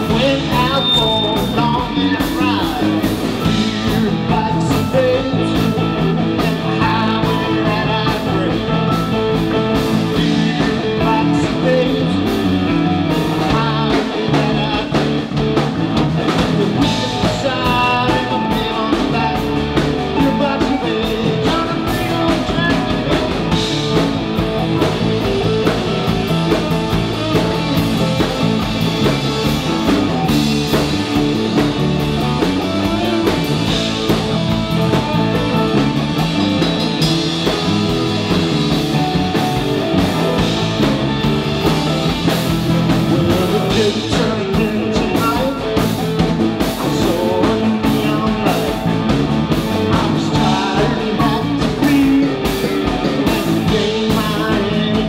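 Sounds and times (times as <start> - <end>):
drum kit: 0.0 - 55.0
electric guitar: 0.0 - 55.0.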